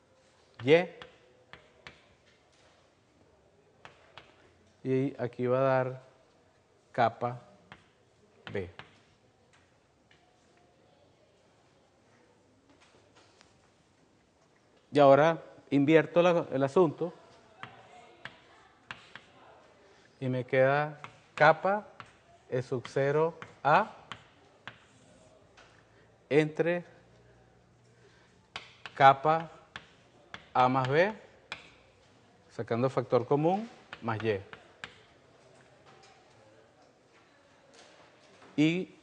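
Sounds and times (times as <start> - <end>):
chalk tapping on blackboard: 17.6 - 19.4, 21.0 - 22.2, 22.8 - 25.3, 28.5 - 31.8.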